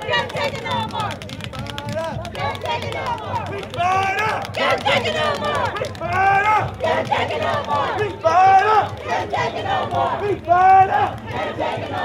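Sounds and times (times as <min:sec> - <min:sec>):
crowd calling out and chanting: 0:00.0 - 0:12.0.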